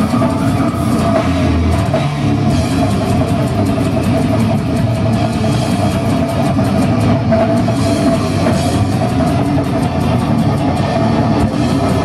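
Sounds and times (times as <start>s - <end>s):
distorted guitar and bass: 0.0s - 12.0s
rapid dense drumming: 0.0s - 12.0s.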